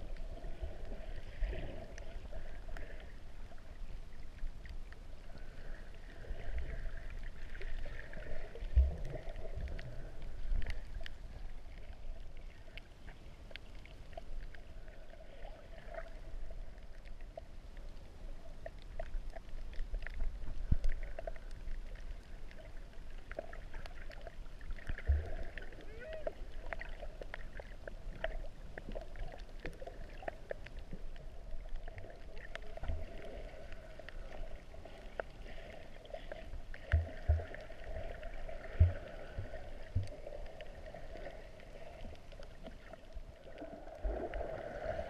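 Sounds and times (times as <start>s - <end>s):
small underwater clicks: 0.0s - 45.0s
underwater rumble of moving water: 0.0s - 45.0s.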